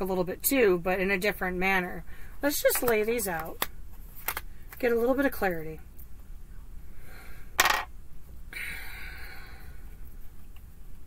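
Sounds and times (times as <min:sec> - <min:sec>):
cards rustling: 0:02.7 - 0:05.2.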